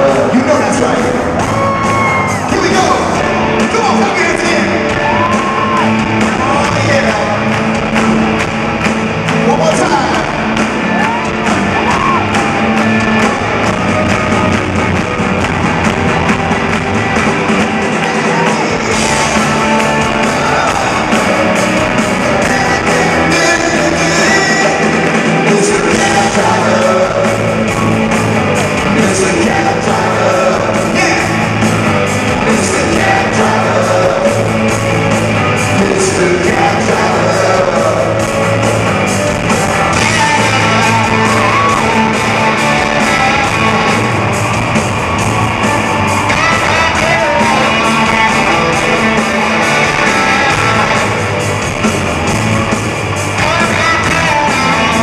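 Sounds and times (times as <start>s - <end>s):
live rock band in arena: 0.0s - 55.0s.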